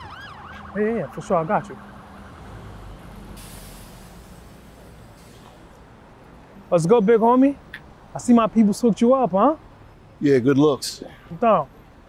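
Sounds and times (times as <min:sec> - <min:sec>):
street traffic rumble: 0:00.0 - 0:12.0
short burst of hiss: 0:03.4 - 0:05.6.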